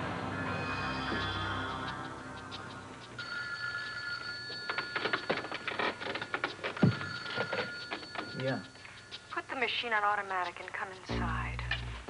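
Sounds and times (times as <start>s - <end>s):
telephone ringing: 3.0s - 10.8s
handset clicks and clatter: 4.5s - 8.5s.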